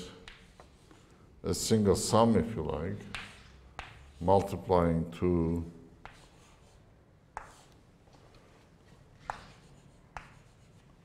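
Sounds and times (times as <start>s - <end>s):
chalk tapping and scraping: 0.0s - 1.2s, 2.4s - 4.7s, 6.0s - 11.0s.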